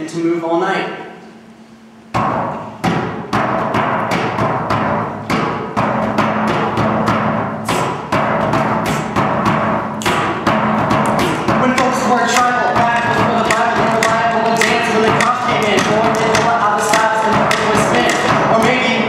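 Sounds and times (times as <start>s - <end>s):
rap beat drums: 3.2s - 19.0s.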